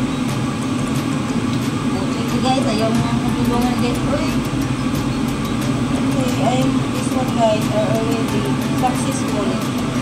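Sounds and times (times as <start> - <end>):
range hood fan humming: 0.0 - 10.0.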